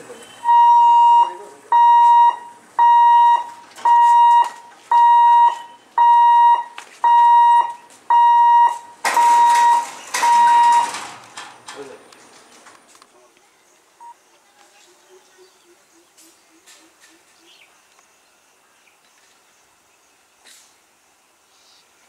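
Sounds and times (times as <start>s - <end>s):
level crossing hooter beeping: 0.0s - 11.0s.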